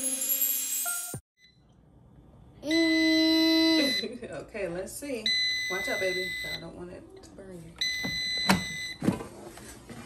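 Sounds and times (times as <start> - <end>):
air fryer electronic beep: 0.2 - 1.7, 2.6 - 4.1, 5.2 - 6.7, 7.8 - 9.1.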